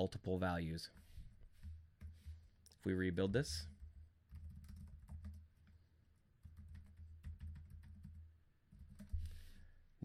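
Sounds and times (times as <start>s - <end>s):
faint keyboard typing: 0.9s - 9.7s.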